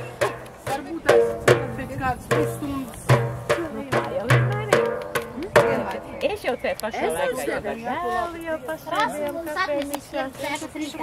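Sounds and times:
frame drum booming: 0:00.0 - 0:06.1.

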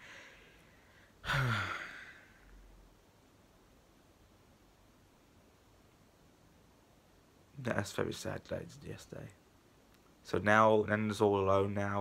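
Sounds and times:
man sighing: 0:01.2 - 0:02.7.

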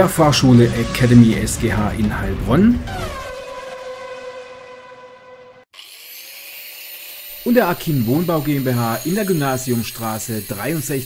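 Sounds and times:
electronic tone rising in pitch: 0:00.0 - 0:05.7.

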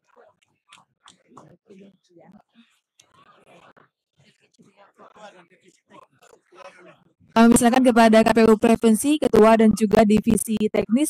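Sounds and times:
faint voices in large hall: 0:00.0 - 0:07.9.

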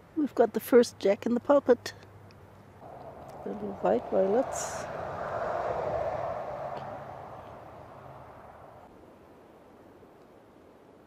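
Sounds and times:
distant engine drone: 0:02.8 - 0:08.9.

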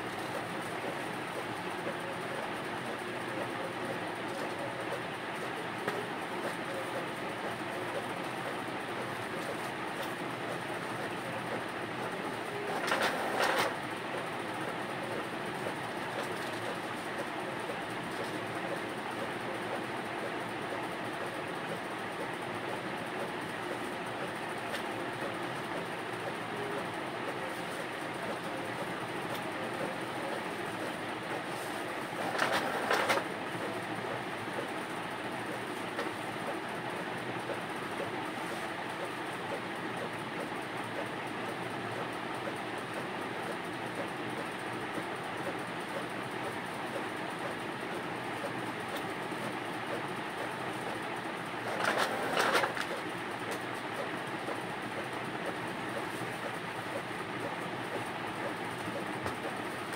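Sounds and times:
steady background noise: 0:00.0 - 0:59.9
paper sheets rustling: 0:31.6 - 0:33.2, 0:51.7 - 0:52.9.

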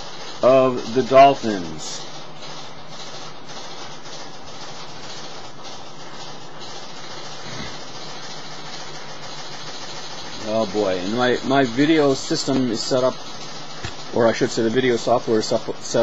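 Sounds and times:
washing machine running: 0:00.0 - 0:16.0.

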